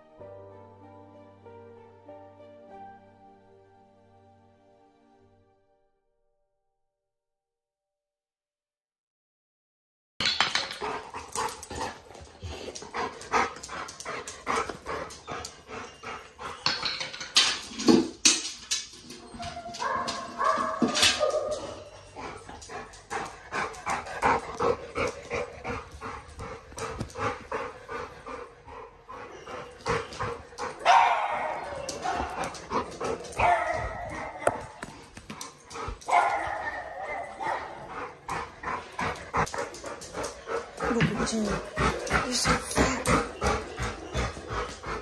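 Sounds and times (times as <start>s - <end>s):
dog barking and whimpering: 19.1s - 22.6s, 29.2s - 35.1s, 36.0s - 39.8s, 40.7s - 45.0s.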